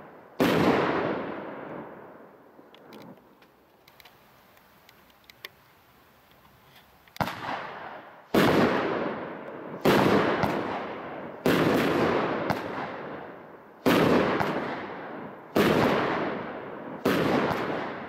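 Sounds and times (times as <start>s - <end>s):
firework bangs: 0.0s - 2.2s, 7.2s - 18.0s.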